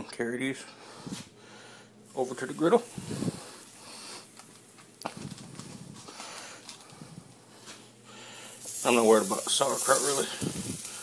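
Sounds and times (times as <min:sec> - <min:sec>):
faint handling noise: 0:02.1 - 0:07.9
sandwiches sizzling on griddle: 0:02.4 - 0:04.9, 0:07.6 - 0:11.0.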